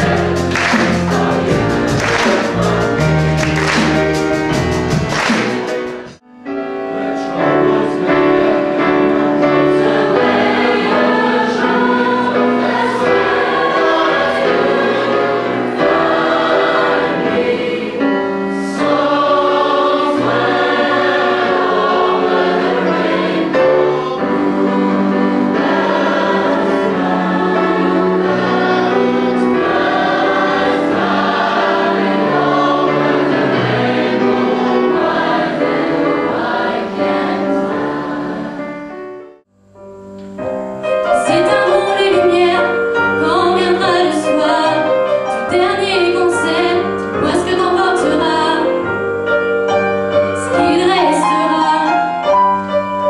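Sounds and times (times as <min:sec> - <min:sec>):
choir singing: 0:00.0 - 0:39.5, 0:40.8 - 0:52.7.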